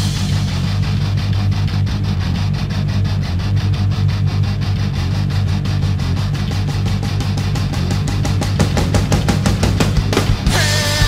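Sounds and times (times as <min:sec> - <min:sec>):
heavy distorted guitars and bass: 0:00.0 - 0:11.0.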